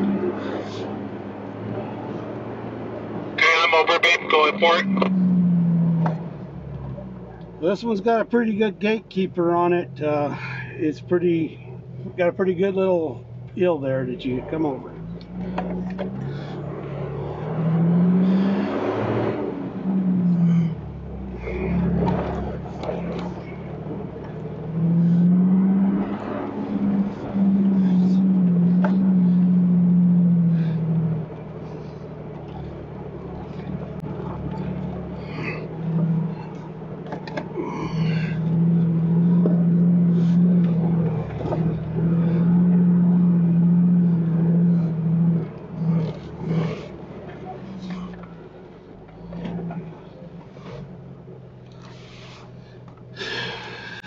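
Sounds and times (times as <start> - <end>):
car engine running: 0.0 - 54.0.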